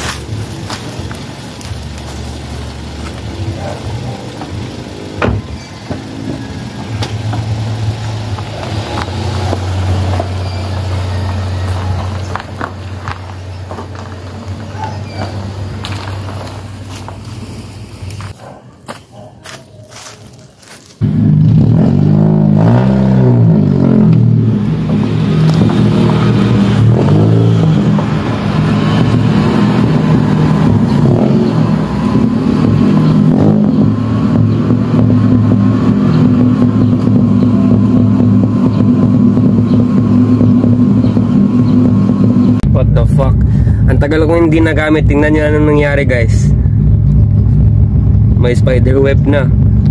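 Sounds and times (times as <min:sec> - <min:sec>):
car engine idling: 0:00.0 - 0:18.4, 0:23.4 - 0:49.9
loud engine with wavering pitch: 0:00.0 - 0:18.4, 0:19.9 - 0:49.9.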